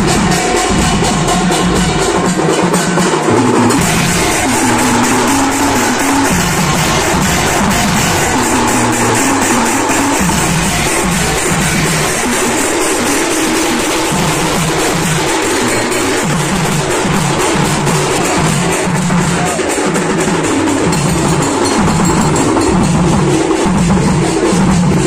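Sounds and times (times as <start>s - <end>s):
fast drum beat: 0.0s - 25.0s
hand cymbals: 0.0s - 25.0s.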